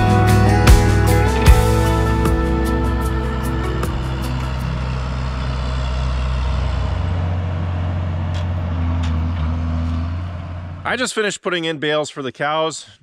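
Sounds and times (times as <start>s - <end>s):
tractor diesel engine drone: 0.0s - 11.1s.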